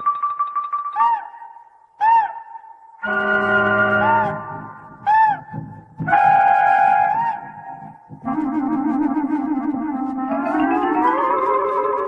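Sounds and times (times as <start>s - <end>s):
cartoon owl hooting: 0.0s - 5.6s.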